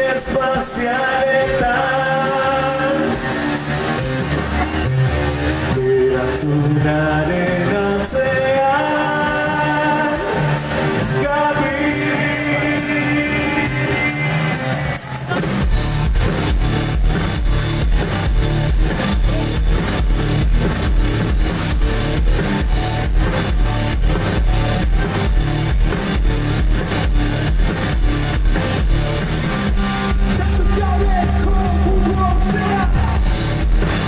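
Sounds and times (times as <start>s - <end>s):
bass guitar: 0.0s - 34.0s
drum kit steady beat: 0.0s - 34.0s
electric guitars: 0.0s - 34.0s.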